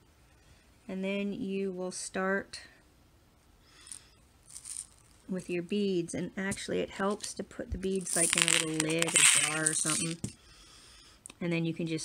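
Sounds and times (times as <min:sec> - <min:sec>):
hands rustling: 0:03.8 - 0:05.4, 0:07.1 - 0:10.4
beads shifting in plastic container: 0:03.9 - 0:05.3, 0:07.9 - 0:10.3.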